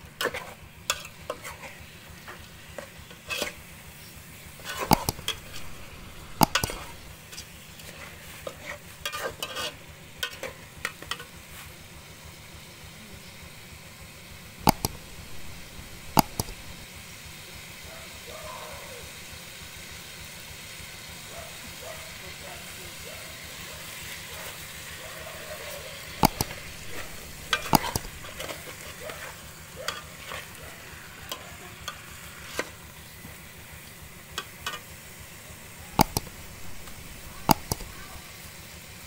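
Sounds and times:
fish sizzling in a pot: 0:00.0 - 0:39.0
metal spoon clinking on pot: 0:04.6 - 0:07.1, 0:26.2 - 0:28.5.

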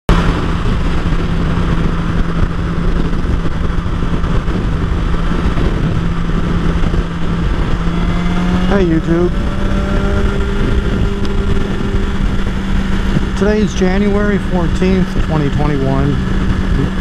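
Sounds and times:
motorcycle engine hum: 0:00.0 - 0:17.0
wind and road noise: 0:00.1 - 0:17.0.

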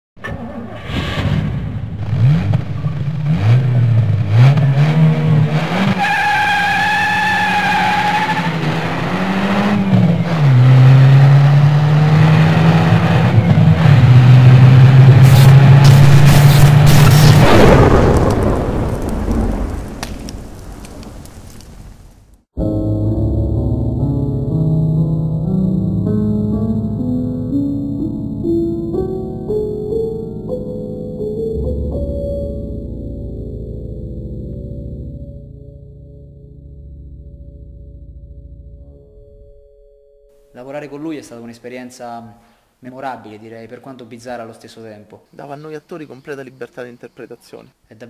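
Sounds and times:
car engine revving: 0:00.2 - 0:18.3
tyre squeal: 0:05.9 - 0:08.8.

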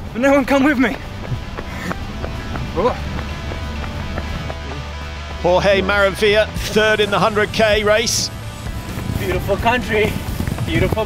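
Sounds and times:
background music with low bass: 0:00.0 - 0:11.0
footfalls on road: 0:00.6 - 0:07.0, 0:08.6 - 0:11.0.

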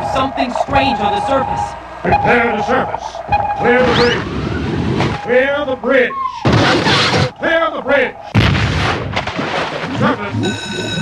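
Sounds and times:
blast sound effect: 0:08.3 - 0:10.1.

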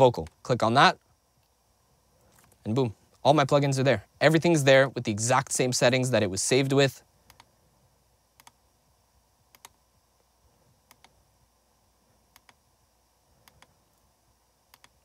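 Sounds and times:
computer mouse clicks: 0:07.3 - 0:07.5, 0:08.4 - 0:08.6, 0:09.5 - 0:09.8, 0:10.8 - 0:11.2, 0:12.3 - 0:12.6, 0:13.4 - 0:13.8, 0:14.7 - 0:15.0.

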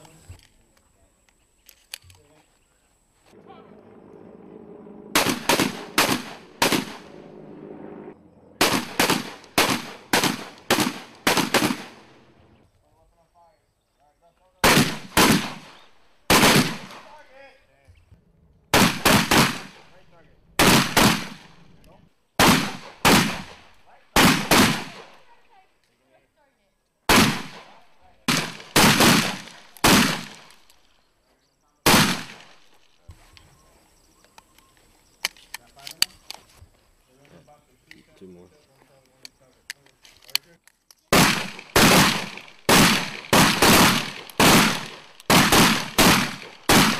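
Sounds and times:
shotgun shots with echo: 0:04.9 - 0:07.2, 0:08.6 - 0:12.2, 0:14.6 - 0:17.2, 0:18.7 - 0:20.0, 0:20.6 - 0:21.6, 0:22.4 - 0:25.3, 0:27.1 - 0:30.6, 0:31.9 - 0:32.6, 0:41.1 - 0:46.9.

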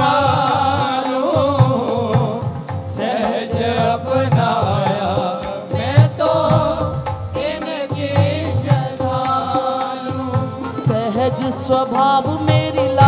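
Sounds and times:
devotional music with percussion: 0:00.0 - 0:13.0.

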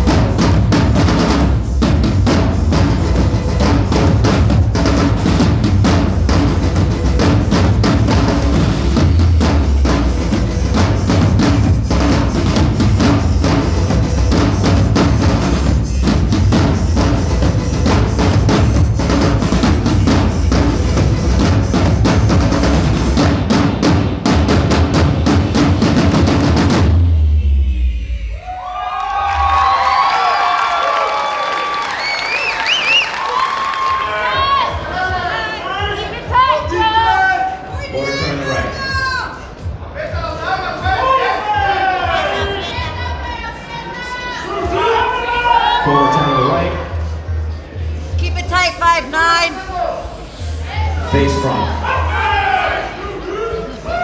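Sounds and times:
recorded music with bass line: 0:00.0 - 0:28.5
audience cheering and clapping: 0:28.4 - 0:35.6.

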